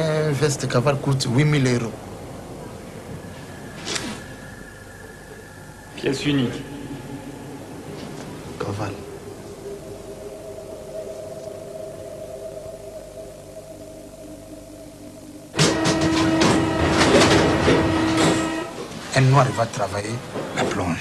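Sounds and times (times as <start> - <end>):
steady background hum: 0.0 - 21.0
train whining and clattering: 15.5 - 19.2.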